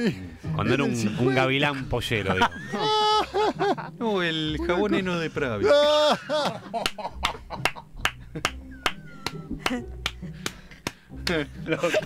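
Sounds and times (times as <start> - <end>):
people laughing: 2.1 - 10.6, 11.2 - 12.0
rhythmic hand clapping: 6.4 - 12.0.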